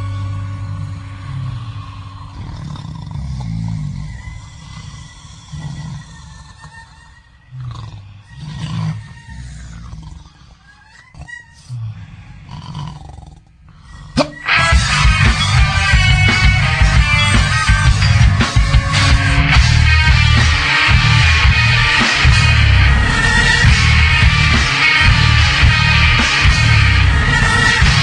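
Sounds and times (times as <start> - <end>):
low growling swells: 0.0 - 6.6, 14.7 - 28.0
scattered higher noises: 0.0 - 7.4, 14.2 - 28.0.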